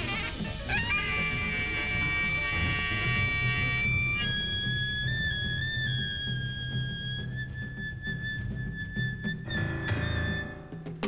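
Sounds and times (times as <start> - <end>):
saxophone high overblown note: 0.0 - 10.8.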